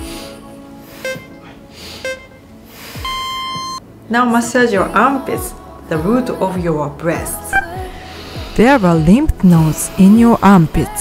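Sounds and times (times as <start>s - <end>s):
soft background music: 0.0s - 11.0s
short electronic beeps: 1.0s - 1.4s, 2.0s - 2.4s, 3.0s - 3.8s, 7.6s - 7.8s.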